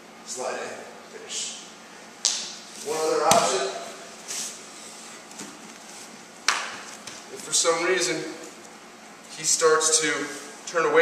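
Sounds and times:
sharp slap: 2.2 - 2.6, 3.3 - 3.7.

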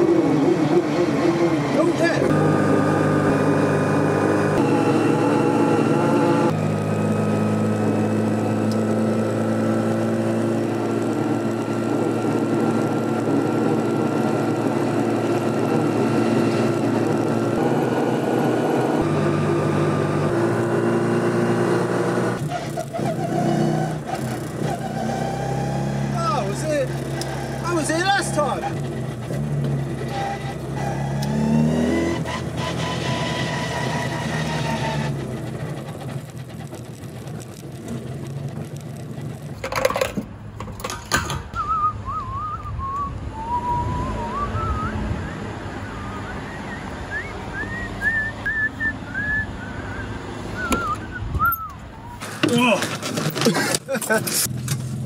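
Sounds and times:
car engine drone: 0.0 - 55.0
road noise inside car: 0.0 - 55.0.

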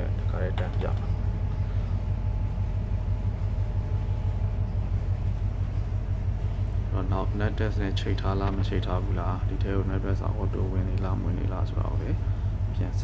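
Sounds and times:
ship machinery hum: 0.0 - 13.0.

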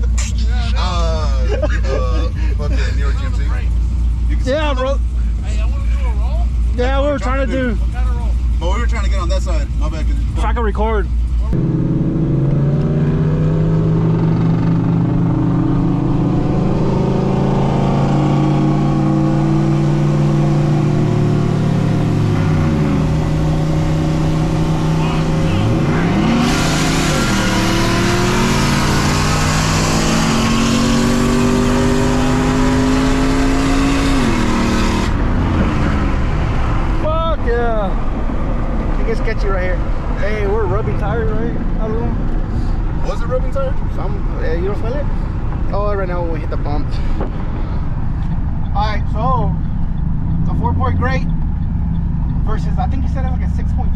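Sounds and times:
truck engine at full throttle: 0.0 - 53.9.

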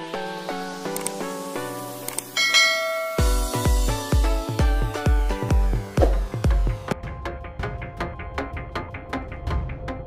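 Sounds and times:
bell-like notification chime: 2.4 - 3.8
background music of struck notes: 2.4 - 10.0.

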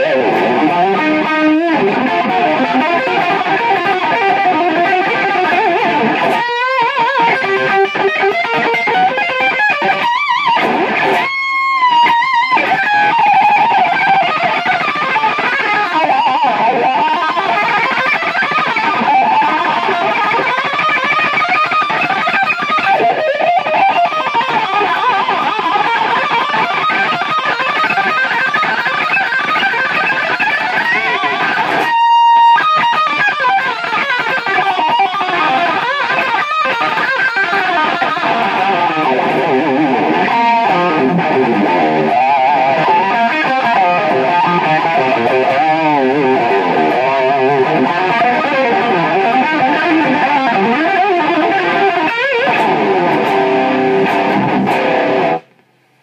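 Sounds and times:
electric guitar solo: 0.0 - 55.6.

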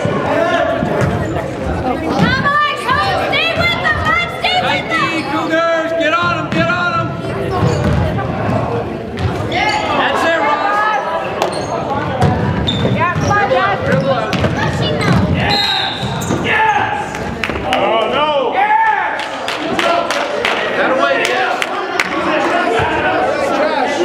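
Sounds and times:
basketball bouncing on hardwood floor: 7.6 - 8.0, 12.2 - 15.4.

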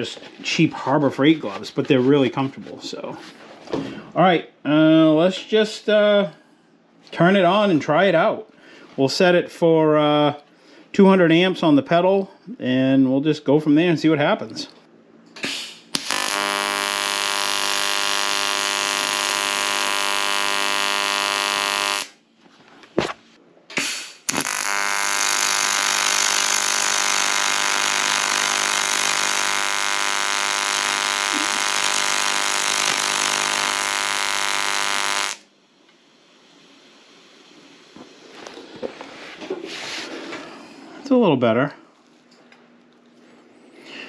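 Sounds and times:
welding arc buzzing: 15.4 - 22.2, 23.7 - 38.3.

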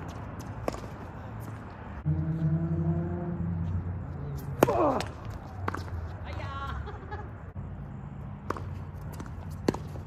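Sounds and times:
racket striking tennis ball: 0.4 - 1.1, 4.4 - 6.0, 8.4 - 10.0.

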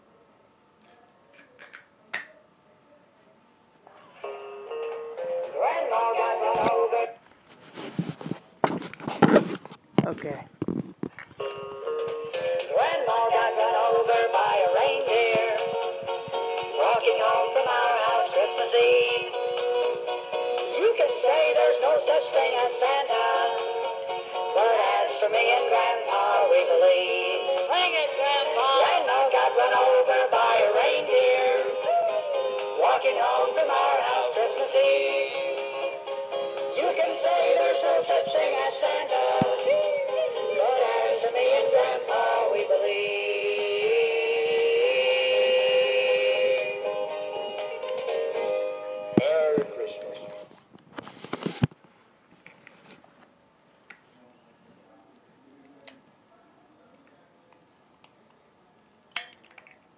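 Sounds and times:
toy being handled: 1.4 - 1.9.

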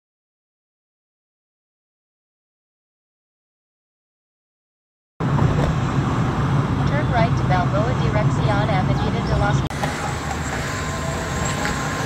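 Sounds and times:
car cabin road and engine noise: 5.2 - 12.0.

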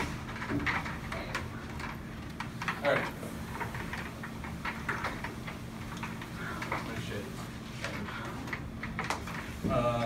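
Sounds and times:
small clicks and knocks: 0.0 - 7.2, 7.8 - 9.6.

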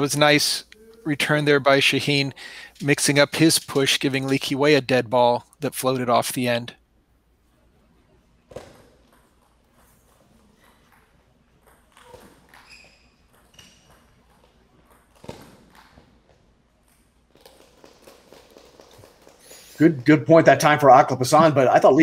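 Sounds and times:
shoe squeaks: 11.9 - 14.4.

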